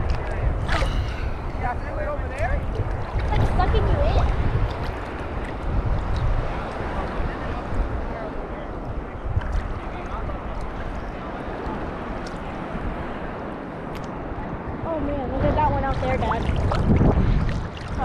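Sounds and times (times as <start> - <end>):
small water splashes: 0.0 - 7.1, 8.9 - 11.0, 15.8 - 18.0
sea water sloshing and lapping: 0.0 - 18.0
wind rumbling on microphone: 0.0 - 18.0.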